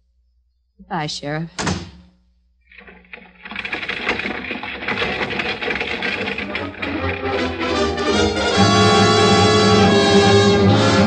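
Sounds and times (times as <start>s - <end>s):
stagecoach hoof and wheel clatter: 2.8s - 10.1s
dramatic music: 6.8s - 11.0s.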